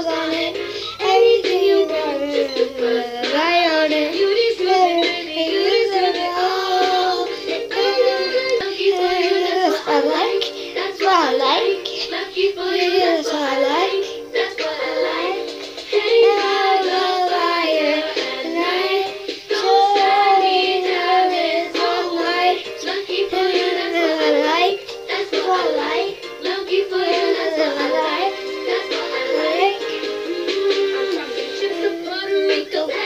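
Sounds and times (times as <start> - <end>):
girl singing: 0.0 - 33.0.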